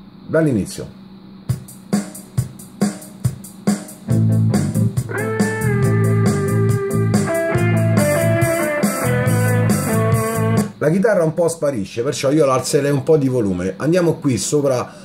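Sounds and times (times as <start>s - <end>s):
drum beat: 1.5s - 10.8s
bass line: 4.1s - 10.8s
electric guitar: 4.1s - 10.8s.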